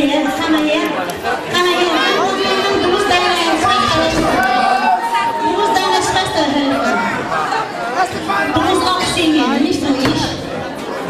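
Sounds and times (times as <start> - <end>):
woman speaking into a microphone: 0.0 - 0.9, 1.5 - 4.8, 5.4 - 7.0, 8.6 - 10.4
audience chatter: 0.0 - 11.0.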